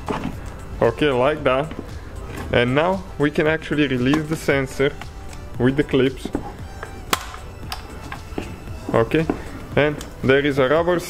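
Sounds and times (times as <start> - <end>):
sharp plastic clicks: 7.1 - 7.9.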